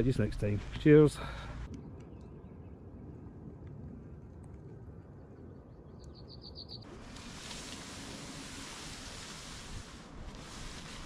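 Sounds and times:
wind rumble on microphone: 0:01.7 - 0:06.3
small bird chirping: 0:05.9 - 0:06.9
steady broad hiss: 0:06.9 - 0:11.0.

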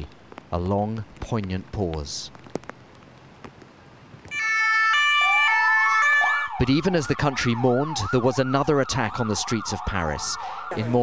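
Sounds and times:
police two-tone siren: 0:04.3 - 0:11.0.

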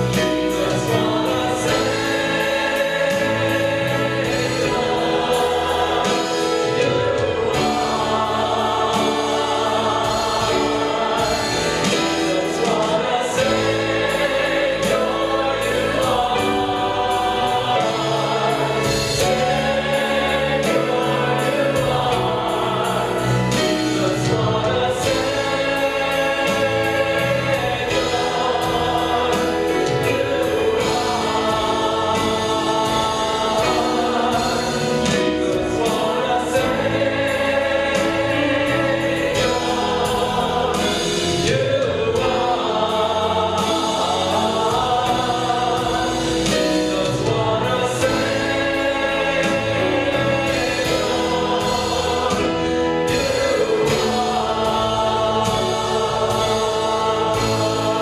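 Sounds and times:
choir singing gospel song: 0:00.0 - 0:58.0
live band playing: 0:00.0 - 0:58.0.

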